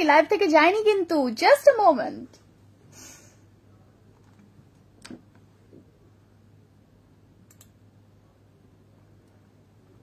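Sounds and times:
faint clicks: 7.4 - 7.8.

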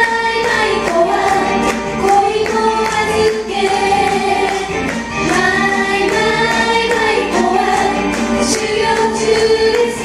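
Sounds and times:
women singing in unison: 0.0 - 10.0
backing music with percussive beats: 0.1 - 10.0.

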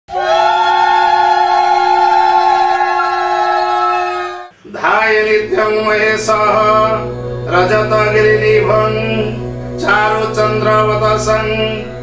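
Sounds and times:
conch shell blown: 6.0 - 12.0.

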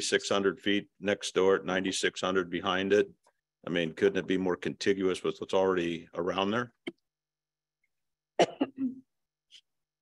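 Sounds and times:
person clearing throat: 8.4 - 9.1.

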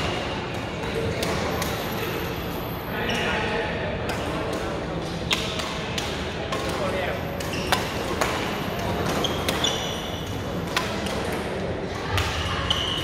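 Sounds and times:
chatter of players: 0.0 - 13.0
rackets hitting shuttlecocks: 4.0 - 13.0.

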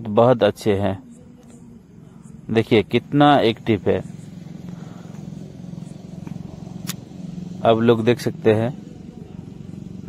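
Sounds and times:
low engine hum: 0.0 - 10.0
sharp click: 6.8 - 7.0.

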